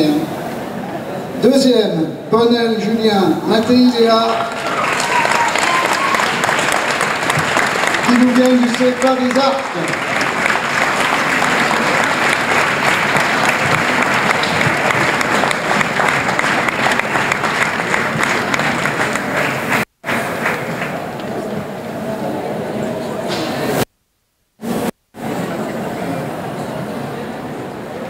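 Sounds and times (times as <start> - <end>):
audience applauding: 4.1 - 21.8.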